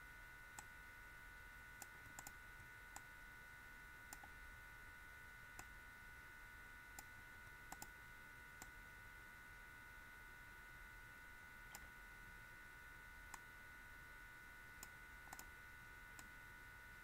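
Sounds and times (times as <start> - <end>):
faint high-pitched electrical hum: 0.0 - 17.0
computer mouse clicks: 1.8 - 3.1, 4.1 - 4.4, 7.0 - 8.0, 11.7 - 11.9, 14.8 - 15.5.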